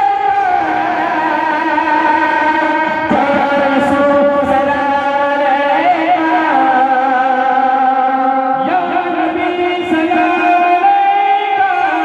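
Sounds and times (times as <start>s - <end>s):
men singing into microphones: 0.0s - 12.0s.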